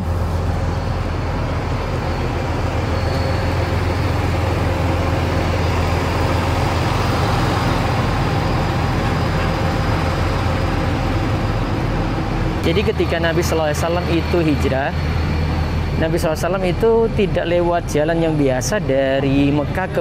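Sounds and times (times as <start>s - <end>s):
bus engine idling: 0.0s - 20.0s.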